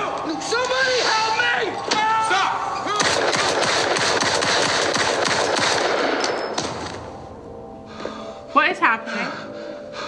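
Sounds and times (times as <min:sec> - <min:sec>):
rapid cracks and bangs: 0:03.0 - 0:07.0.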